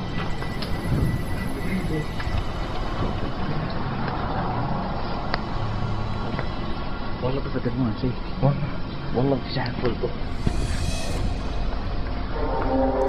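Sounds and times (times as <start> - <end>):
steady rumbling noise: 10.2 - 13.0.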